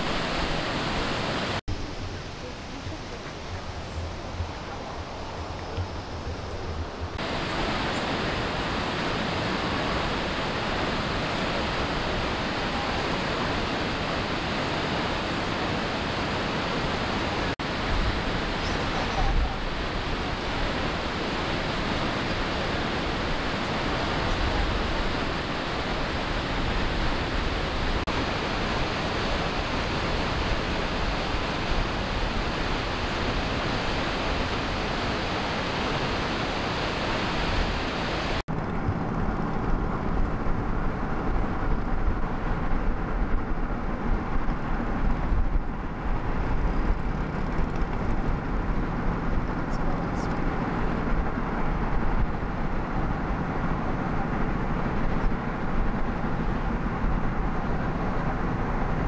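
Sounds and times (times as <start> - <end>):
car road noise rumble: 0.0 - 35.9, 38.2 - 59.0
waterfall roaring: 0.0 - 59.0.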